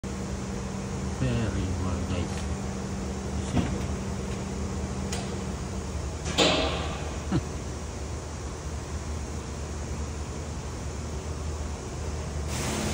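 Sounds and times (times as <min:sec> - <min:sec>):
low mechanical hum: 0:00.0 - 0:12.9.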